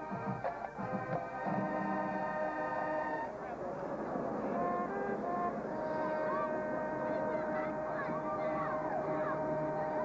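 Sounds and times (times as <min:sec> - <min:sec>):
brass band chord: 0:00.0 - 0:10.0
stadium crowd noise: 0:00.0 - 0:10.0
sustained horn tone: 0:00.0 - 0:10.0.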